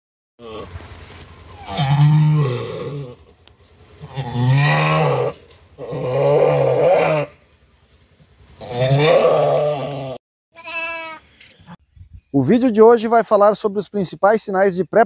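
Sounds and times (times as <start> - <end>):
sheep bleating: 10.6 - 11.2.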